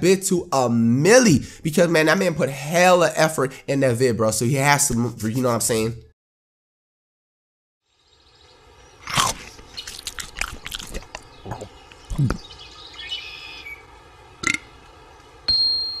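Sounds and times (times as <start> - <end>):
bird-like chirp: 7.9 - 13.9
bright ringing ding: 15.5 - 16.0.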